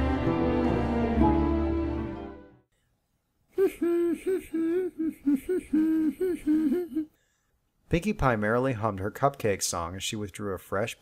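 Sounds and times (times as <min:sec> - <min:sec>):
high voice singing wordless tune: 0:03.6 - 0:07.2.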